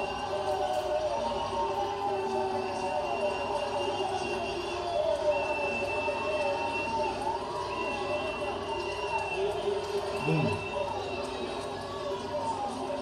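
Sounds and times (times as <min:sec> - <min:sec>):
voices and crowd on television: 0:00.0 - 0:13.0.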